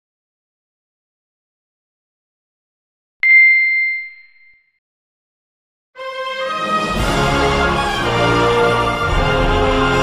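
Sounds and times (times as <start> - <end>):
high bell-like ding: 3.2 - 4.7.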